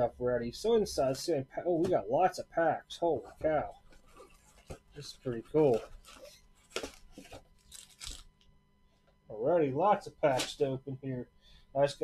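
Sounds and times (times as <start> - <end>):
foil card packs rustling: 3.9 - 8.3.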